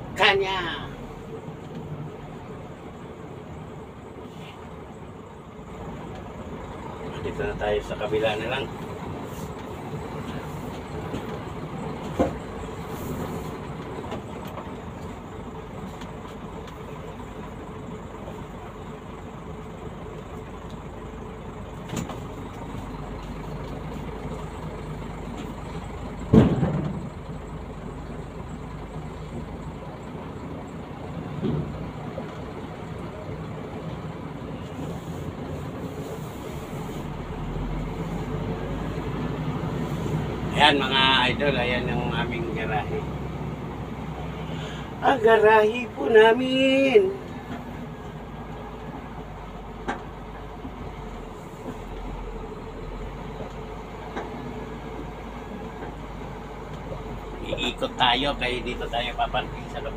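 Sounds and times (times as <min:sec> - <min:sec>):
car engine and tyres rumbling: 0:00.0 - 0:59.9
loud thump: 0:26.3 - 0:27.1.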